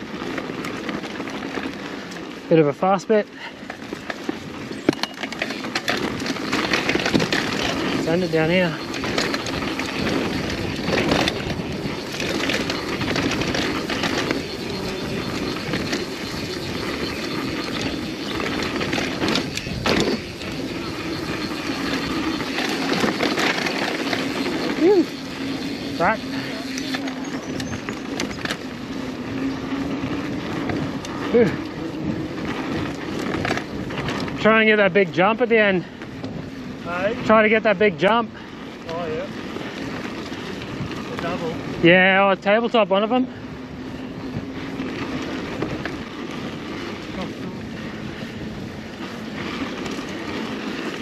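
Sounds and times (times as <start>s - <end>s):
tyre and wind noise: 0.0s - 51.0s
bike knocks and rattles: 3.4s - 42.8s.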